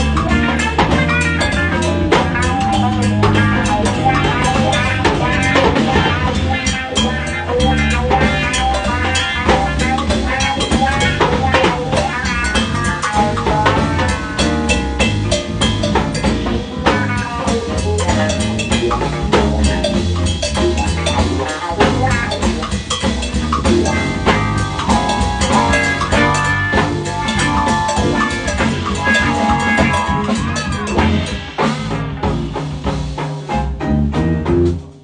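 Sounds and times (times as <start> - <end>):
drum kit playing: 0.0 - 35.0
electric guitar bending notes: 0.0 - 35.0.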